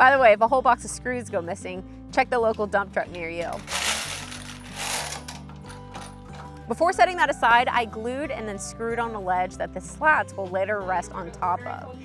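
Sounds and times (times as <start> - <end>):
metal screws spilling onto carpet: 3.5 - 6.1.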